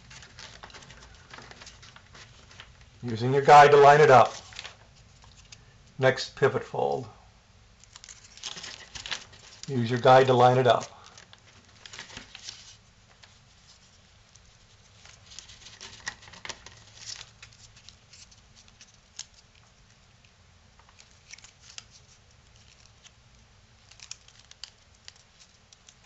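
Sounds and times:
cardstock crinkling and clicking: 0:00.0 - 0:05.6, 0:07.8 - 0:13.4, 0:14.4 - 0:20.0, 0:20.8 - 0:26.0.

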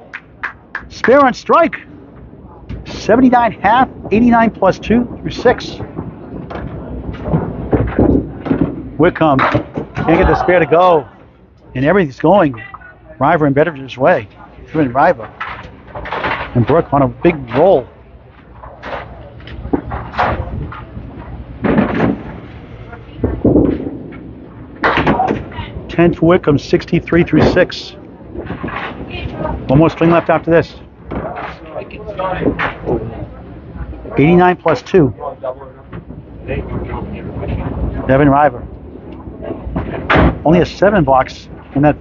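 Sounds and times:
faint background chatter: 0:00.0 - 0:42.0
bowling balls and pins clattering: 0:01.9 - 0:11.3, 0:14.6 - 0:25.9, 0:27.2 - 0:34.9.

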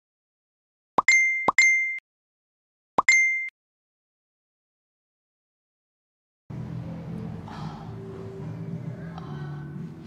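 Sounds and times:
phone notification pop and ding: 0:01.0 - 0:02.0, 0:03.0 - 0:03.5.

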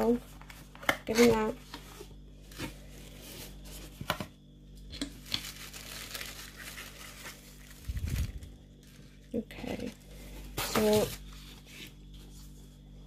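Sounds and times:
tissue paper crinkling: 0:05.2 - 0:12.7.

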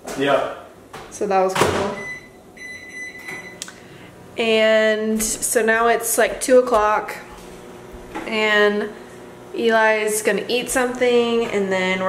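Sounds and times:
electronic beep: 0:02.0 - 0:03.6.

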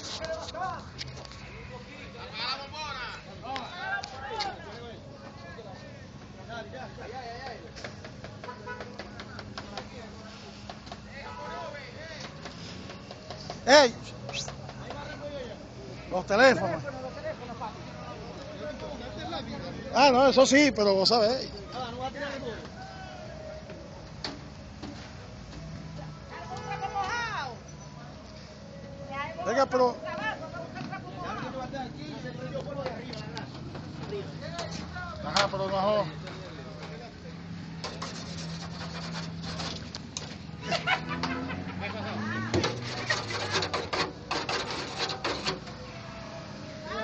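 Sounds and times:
crowd background noise: 0:00.0 - 0:47.0.

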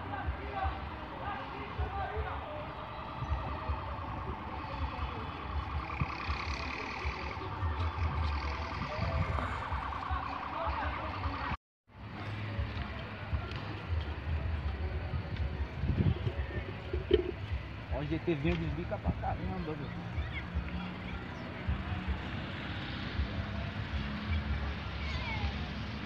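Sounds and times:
faint voices: 0:00.0 - 0:26.0
street noise: 0:00.0 - 0:26.0
wind buffeting microphone: 0:02.8 - 0:10.3, 0:14.2 - 0:20.9.

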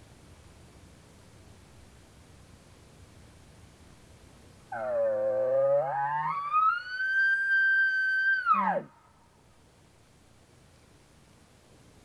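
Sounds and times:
elk call blown by hand: 0:04.7 - 0:09.0.

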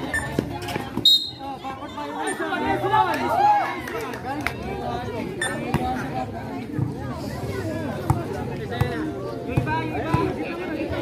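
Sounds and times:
chatter of people: 0:00.0 - 0:11.0
whistle blast: 0:01.0 - 0:01.5
basketball bouncing on concrete: 0:05.7 - 0:06.0, 0:08.0 - 0:10.4.

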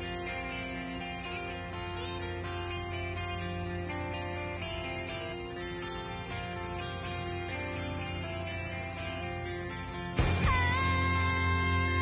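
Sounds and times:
insects chirping: 0:00.0 - 0:12.0
soft background music: 0:00.0 - 0:12.0.

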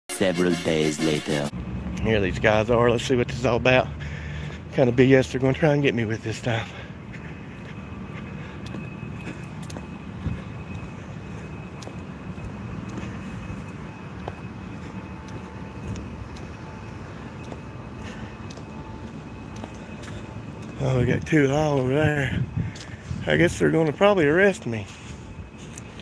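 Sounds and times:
road traffic hum: 0:00.1 - 0:26.0.

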